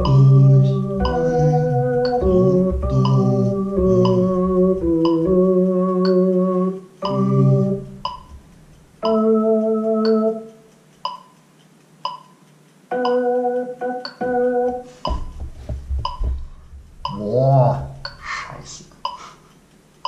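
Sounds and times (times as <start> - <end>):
synthesizer keyboard chords: 0.0 - 11.3, 12.1 - 18.4
metronome ticking: 0.0 - 20.0.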